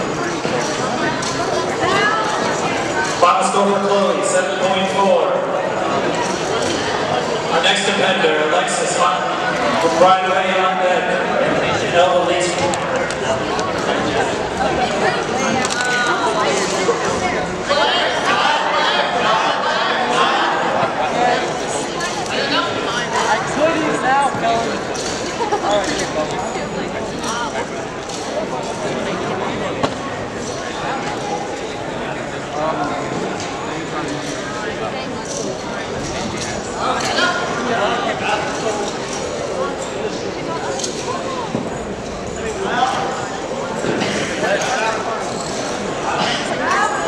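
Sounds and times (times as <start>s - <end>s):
people chattering in gymnasium: 0.0s - 47.0s
people talking: 0.0s - 47.0s.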